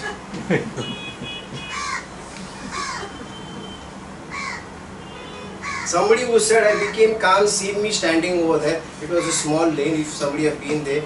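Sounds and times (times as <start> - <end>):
crow cawing: 1.7 - 2.1, 2.7 - 3.1, 4.3 - 4.7, 5.6 - 6.0, 9.2 - 9.5.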